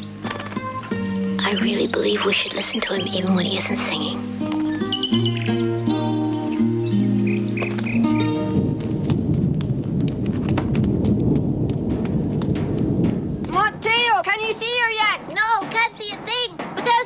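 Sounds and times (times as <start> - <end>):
film score with held notes: 0.0 - 17.0
steady low rumble: 7.2 - 16.8.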